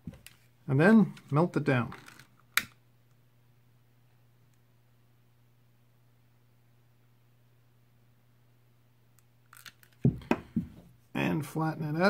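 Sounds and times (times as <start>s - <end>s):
tools knocking on table: 10.0s - 10.8s.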